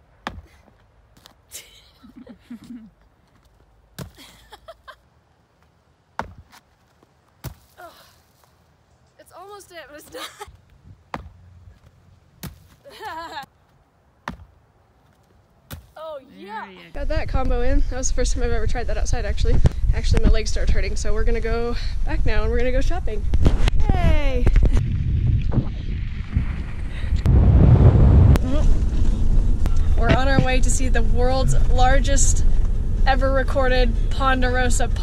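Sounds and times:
feet landing thuds: 0:00.2 - 0:01.4, 0:02.6 - 0:04.5, 0:05.6 - 0:08.6, 0:10.0 - 0:13.5, 0:14.2 - 0:16.0
wind buffeting microphone: 0:17.0 - 0:35.0.

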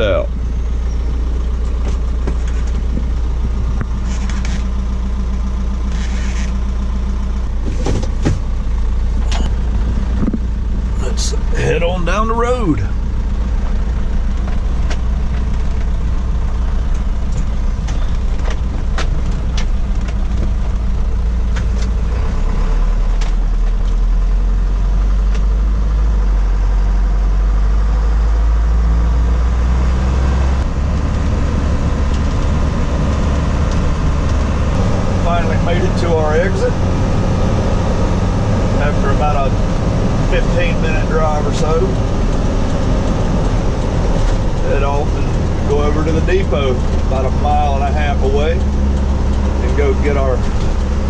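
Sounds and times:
road noise: 0:00.0 - 0:51.0
truck engine drone from cab: 0:00.0 - 0:51.0.

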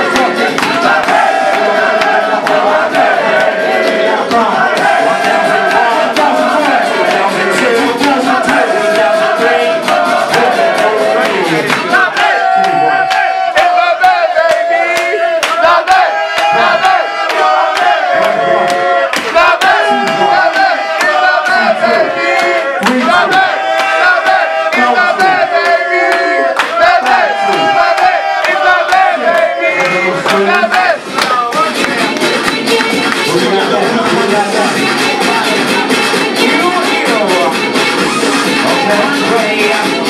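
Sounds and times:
crowd cheering and shouting: 0:00.0 - 0:40.0
sharp rhythmic strikes: 0:00.0 - 0:40.0
voices chanting long calls: 0:00.0 - 0:40.0.

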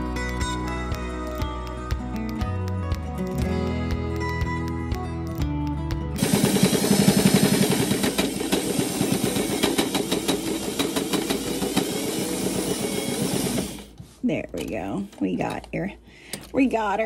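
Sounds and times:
background music: 0:00.0 - 0:08.0
sewing machine stitching fast: 0:06.2 - 0:13.9.

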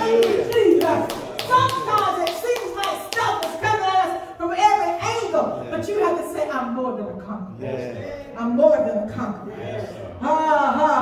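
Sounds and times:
hands clapping fast: 0:00.0 - 0:03.9
woman preaching: 0:00.0 - 0:09.6, 0:10.2 - 0:11.0.

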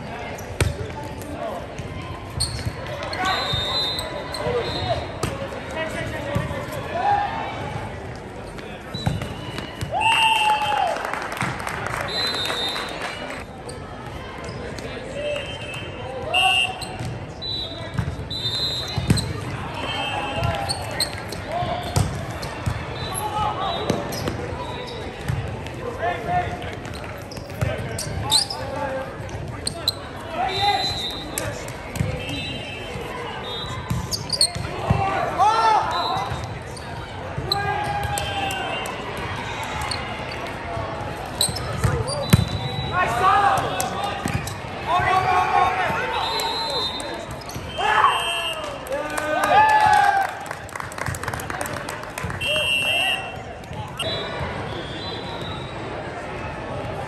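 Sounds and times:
referee whistle: 0:02.4 - 0:05.1, 0:12.0 - 0:13.4, 0:15.2 - 0:21.1, 0:22.9 - 0:25.1, 0:30.4 - 0:34.6, 0:35.8 - 0:36.4, 0:37.5 - 0:39.0, 0:41.4 - 0:43.9, 0:45.9 - 0:48.8, 0:52.4 - 0:56.0
balls bouncing on gym floor: 0:08.9 - 0:10.0, 0:17.9 - 0:18.2, 0:18.9 - 0:19.6, 0:20.4 - 0:22.9, 0:25.2 - 0:25.8, 0:33.8 - 0:35.2, 0:41.4 - 0:42.6
sneakers squeaking on hardwood: 0:27.2 - 0:28.8, 0:33.7 - 0:35.0, 0:41.4 - 0:42.9, 0:47.2 - 0:47.8.

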